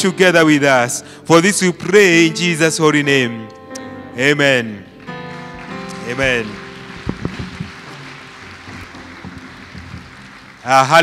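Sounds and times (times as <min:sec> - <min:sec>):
soft knocks: 0:08.7 - 0:10.1.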